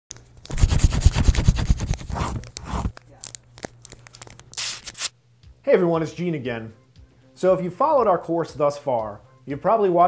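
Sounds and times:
paper scratching and crinkling: 0.4s - 5.1s.

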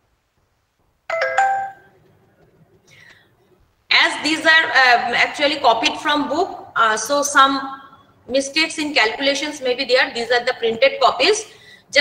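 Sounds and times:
electronic chime: 1.1s - 1.9s.

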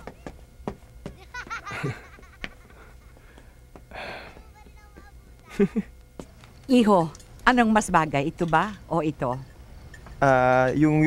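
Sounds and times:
man laughing faintly: 1.2s - 3.3s, 5.5s - 5.9s.

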